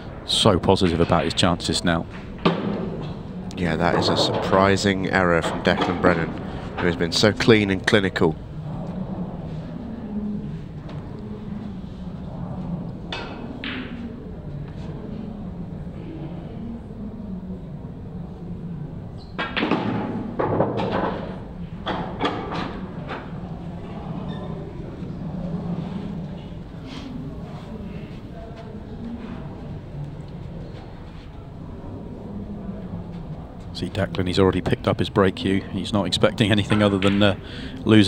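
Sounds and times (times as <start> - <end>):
steady low hum: 0.0 - 19.2, 19.9 - 38.0.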